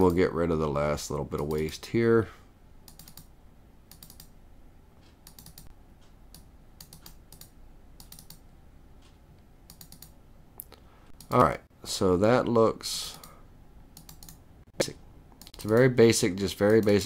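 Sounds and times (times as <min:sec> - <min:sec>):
computer mouse clicks: 0:02.9 - 0:03.3, 0:03.9 - 0:04.4, 0:05.0 - 0:11.5, 0:13.1 - 0:14.4, 0:15.4 - 0:17.0.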